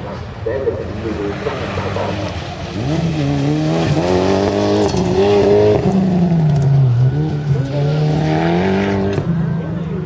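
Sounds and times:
rally car engine revving: 0.8 - 10.0.

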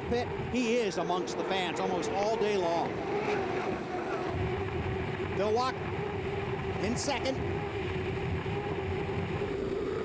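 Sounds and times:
high turbine engine whine: 0.0 - 10.0.

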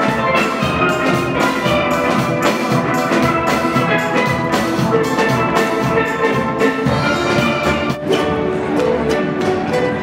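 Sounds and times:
drum kit beat: 0.0 - 10.0
steel pans playing melody: 0.0 - 10.0.

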